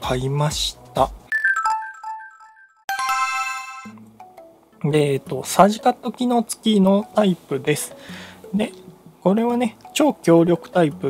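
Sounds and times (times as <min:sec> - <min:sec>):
chime jingle: 0:01.3 - 0:04.0
bright chord: 0:02.9 - 0:04.0.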